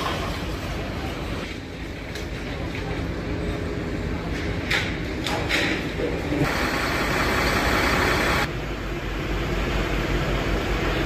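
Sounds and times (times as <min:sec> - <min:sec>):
fire engine pump rushing: 0:06.4 - 0:08.5.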